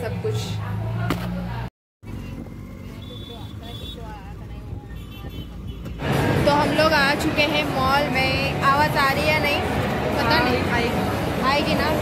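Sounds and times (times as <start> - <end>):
road noise inside moving car: 0.0 - 12.0.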